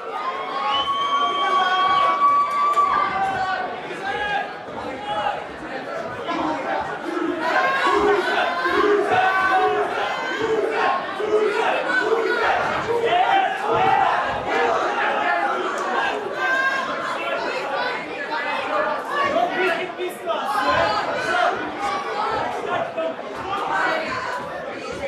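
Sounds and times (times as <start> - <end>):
crowd shouting and yelling: 0.0 - 25.0.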